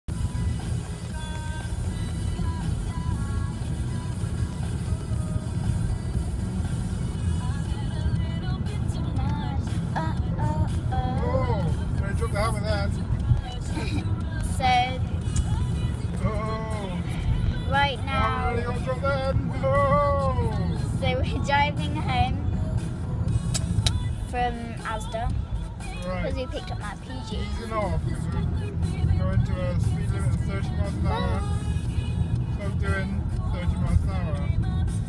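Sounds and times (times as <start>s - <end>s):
car cabin road noise: 0.1s - 35.0s
music playing: 0.1s - 35.0s
person singing or speaking: 9.9s - 13.0s, 16.2s - 22.3s, 25.9s - 31.7s.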